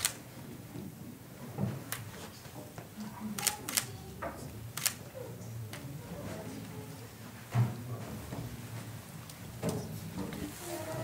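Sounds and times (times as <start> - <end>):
faint murmuring voices: 0.0 - 11.0.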